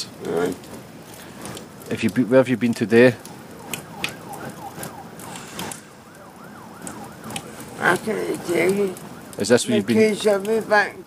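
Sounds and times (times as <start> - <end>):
emergency siren yelping: 3.2 - 11.0.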